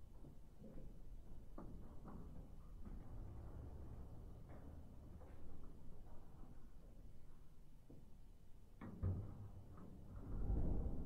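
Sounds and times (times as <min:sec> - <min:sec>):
low rumble: 0:10.2 - 0:11.0.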